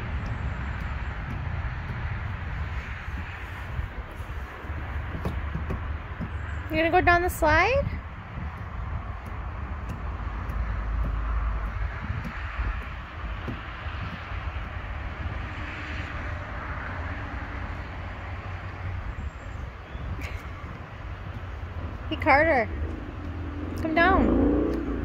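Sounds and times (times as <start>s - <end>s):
low rumble: 7.8s - 25.0s.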